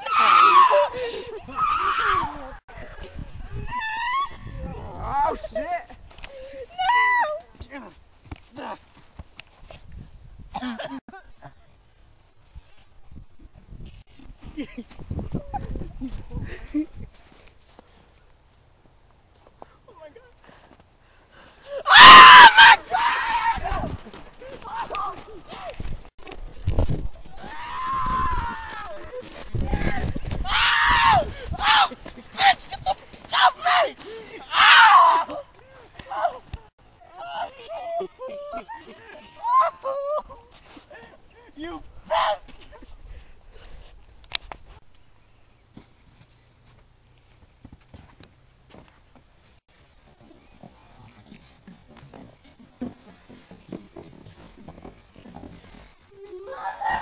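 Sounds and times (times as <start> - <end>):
long drawn-out yell: 0.0 - 2.6, 21.7 - 23.9, 27.3 - 36.4, 38.6 - 40.4, 56.2 - 57.0
people yelping: 0.0 - 2.6, 6.4 - 7.4, 21.7 - 25.6, 27.3 - 36.5, 37.1 - 40.5, 56.3 - 57.0
woman shrieking: 0.0 - 2.6, 3.6 - 5.4, 6.7 - 7.4, 21.8 - 23.8, 37.2 - 40.4, 56.2 - 57.0
running footsteps in snow: 23.0 - 34.4.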